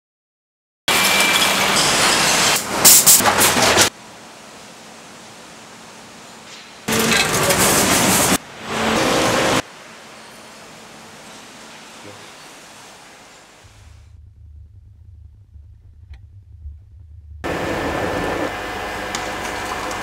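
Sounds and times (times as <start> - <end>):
steady low hum: 13.6 - 19.3
rushing mechanical noise: 13.7 - 20.0.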